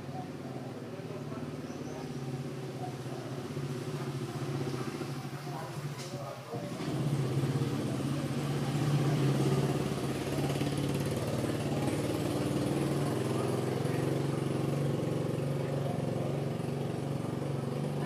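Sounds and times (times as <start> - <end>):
engine idling: 0.0 - 18.0.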